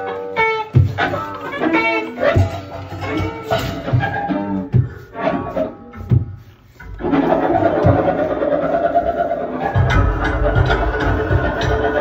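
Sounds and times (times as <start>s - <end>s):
dense noisy improvised music: 0.0s - 12.0s.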